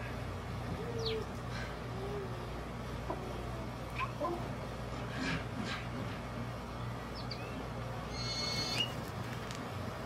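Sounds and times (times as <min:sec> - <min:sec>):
steady low hum: 0:00.0 - 0:10.0
hens giving low calls: 0:00.4 - 0:04.8.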